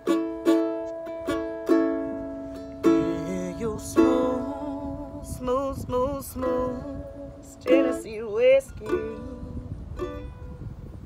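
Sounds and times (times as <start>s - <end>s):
ukulele strummed chords: 0.0s - 10.8s.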